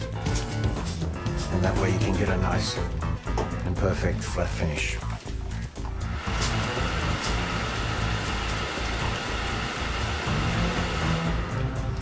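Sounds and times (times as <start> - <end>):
background music: 0.0 - 12.0
steam iron hissing: 6.0 - 12.0.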